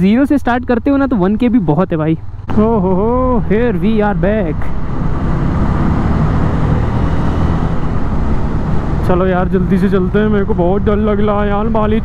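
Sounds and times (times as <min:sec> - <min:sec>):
motorcycle engine accelerating: 0:00.5 - 0:12.0.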